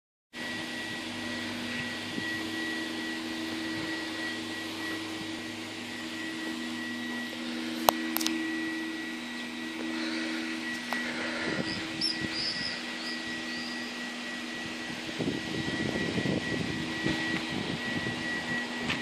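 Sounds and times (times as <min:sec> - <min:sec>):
mechanical hum: 0:00.4 - 0:19.0
fixed tones: 0:00.5 - 0:18.9
airy whooshing noise: 0:01.5 - 0:18.4.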